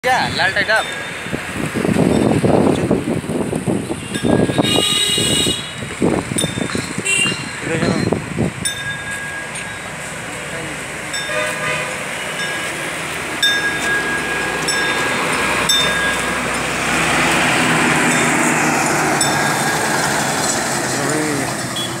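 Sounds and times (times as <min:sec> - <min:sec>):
road traffic engines: 0:00.0 - 0:22.0
vehicle passing close: 0:09.4 - 0:22.0.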